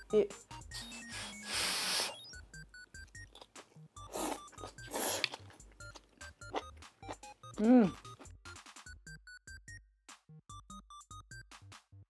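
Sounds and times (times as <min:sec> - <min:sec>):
background music: 0:00.0 - 0:12.0
person slurping food: 0:01.0 - 0:02.3, 0:04.0 - 0:05.6.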